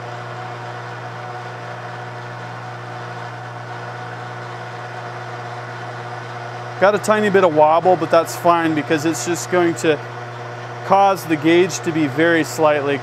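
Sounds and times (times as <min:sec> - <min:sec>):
metal lathe humming: 0:00.0 - 0:13.0.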